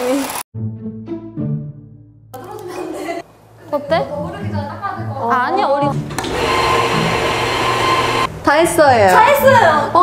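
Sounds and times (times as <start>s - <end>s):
cafe machine whirring hiss: 6.2s - 8.3s.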